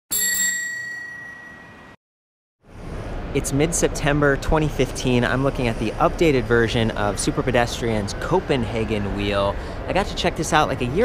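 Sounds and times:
bicycle bell ringing: 0.1 - 2.0.

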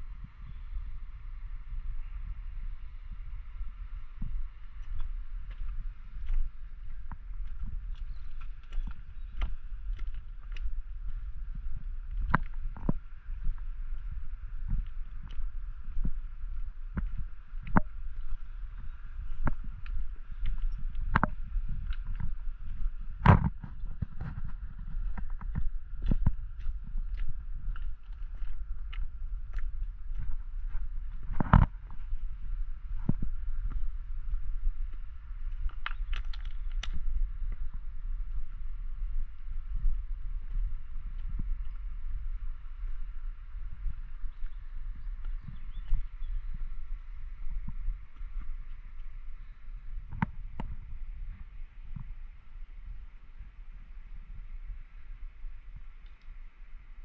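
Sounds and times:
steady low rumble: 0.0 - 57.0
footsteps on stone path: 3.7 - 56.8.

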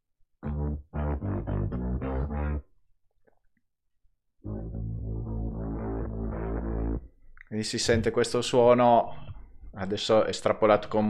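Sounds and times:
distorted electric bass line: 0.4 - 2.7, 4.4 - 7.1.

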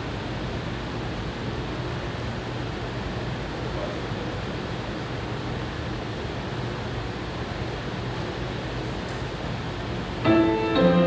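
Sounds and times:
room hiss: 10.2 - 11.0.

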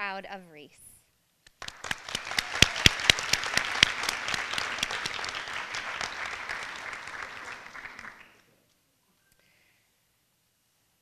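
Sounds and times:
sharp loud claps: 1.4 - 8.4
audience applauding: 1.6 - 8.5.

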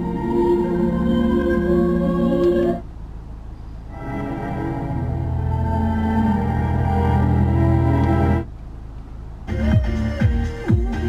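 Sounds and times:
organ-like classical music on radio: 0.0 - 2.8, 3.9 - 8.5
other music on radio: 9.5 - 11.0.

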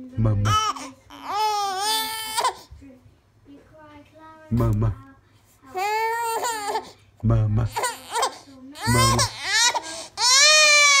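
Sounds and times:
infant crying: 0.4 - 2.7, 5.8 - 7.0, 7.7 - 11.0.

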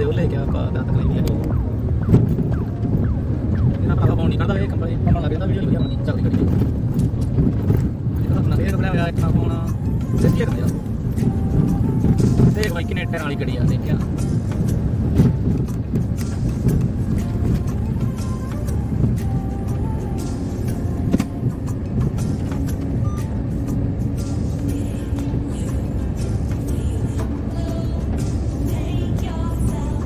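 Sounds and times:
music playing: 0.0 - 30.0
road rumble: 0.0 - 30.0
truck engine drone: 0.0 - 30.0.

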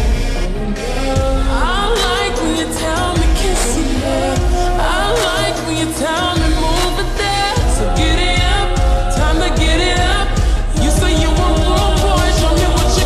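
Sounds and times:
bass-heavy beat: 0.0 - 13.0
person singing with reverb: 0.0 - 13.0.

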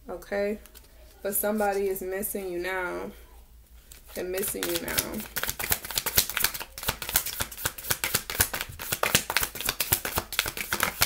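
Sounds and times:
cards being shuffled: 3.9 - 11.0.

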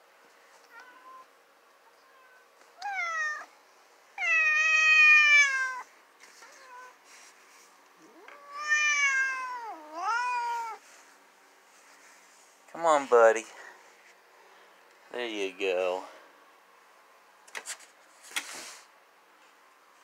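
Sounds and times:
cat meowing: 1.9 - 3.5, 4.2 - 7.0, 8.1 - 10.8.

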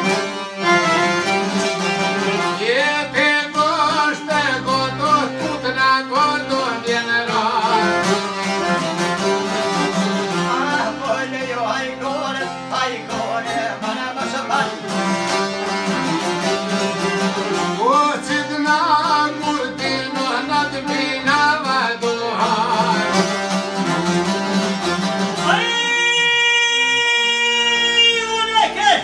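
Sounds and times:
plucked lutes strummed: 0.0 - 27.1
accordion: 0.0 - 28.9
man singing: 2.2 - 8.6, 10.2 - 15.2, 17.6 - 23.5, 25.4 - 29.0.

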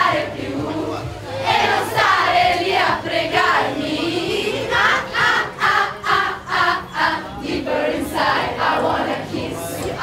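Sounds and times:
group singing and chanting: 0.0 - 10.0.

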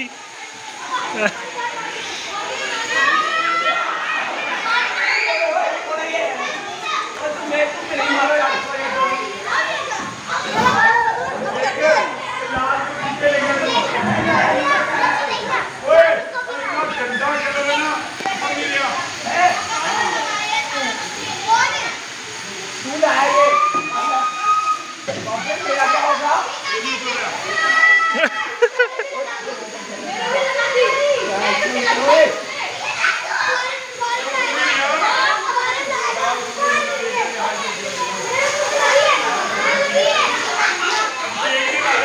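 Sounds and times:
children shouting and chattering: 0.0 - 42.0
long high shout: 23.0 - 25.0, 27.4 - 28.8.

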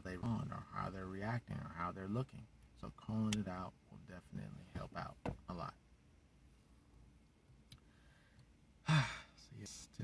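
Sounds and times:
quiet breath: 7.8 - 9.5
man sighing: 8.8 - 9.4.

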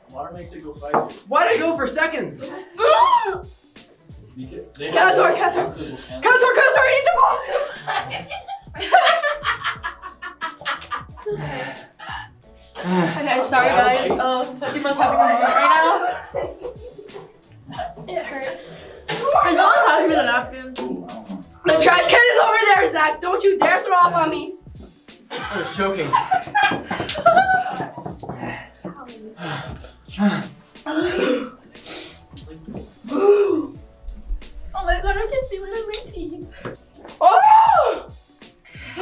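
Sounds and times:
music with repeating bass beat: 0.0 - 39.0
people groaning: 2.6 - 3.6, 10.6 - 13.4, 14.8 - 17.1, 29.4 - 31.8, 33.0 - 33.8
sharp hissing breath: 31.0 - 32.3.

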